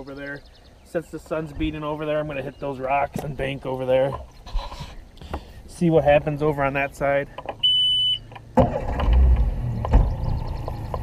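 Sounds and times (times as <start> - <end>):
short electronic beep: 7.6 - 8.3
outboard motor starting and rumbling: 8.5 - 11.0.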